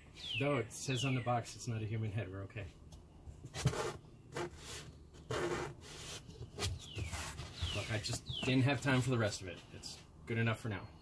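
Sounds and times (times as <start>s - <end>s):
cardboard box rustling: 3.5s - 9.0s.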